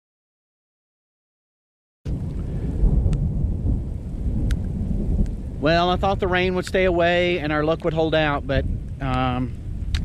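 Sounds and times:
wind buffeting microphone: 0:02.1 - 0:10.0.

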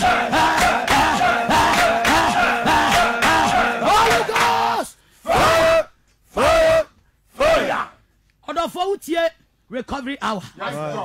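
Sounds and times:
men shouting prayer cries: 0:00.0 - 0:08.0.

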